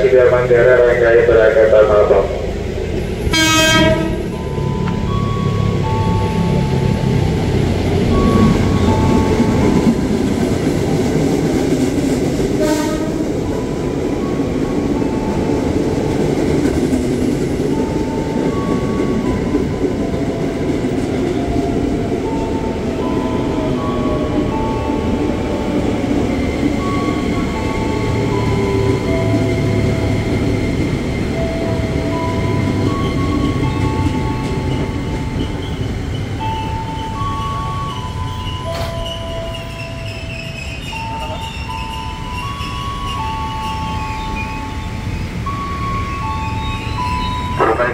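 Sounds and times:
electric train rumbling on rails: 0:00.0 - 0:47.9.

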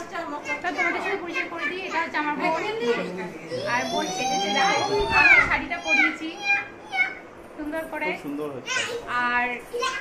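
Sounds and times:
child squealing: 0:03.6 - 0:07.2.

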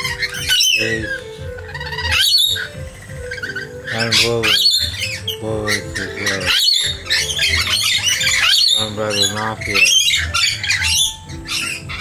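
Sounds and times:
background music: 0:00.0 - 0:12.0
lorikeets squawking: 0:00.0 - 0:12.0.

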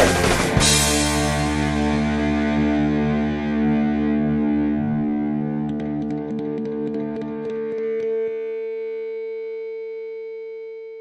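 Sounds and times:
distorted electric guitar note ringing: 0:00.0 - 0:09.9.

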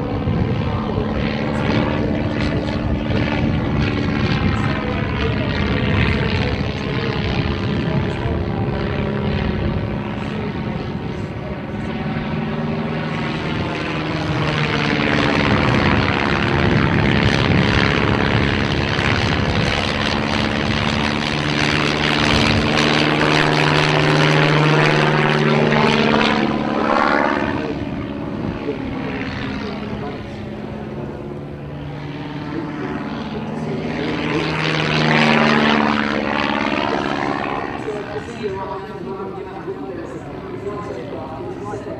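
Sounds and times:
propeller plane engine: 0:00.0 - 0:41.9.

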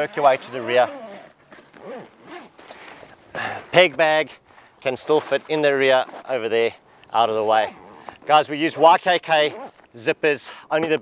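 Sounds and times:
zipper being pulled closed: 0:00.2 - 0:03.2, 0:05.4 - 0:06.4, 0:07.4 - 0:08.8, 0:09.4 - 0:09.8.

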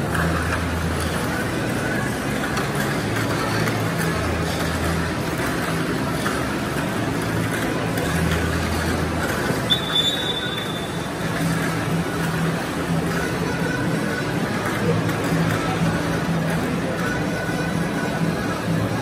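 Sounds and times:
crowd murmur in hall: 0:00.0 - 0:19.0
short high beep: 0:09.7 - 0:10.9.

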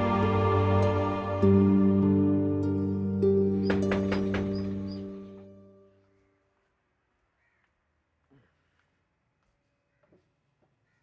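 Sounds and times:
sustained background music notes: 0:00.0 - 0:06.4
faint bird call: 0:07.3 - 0:08.8.

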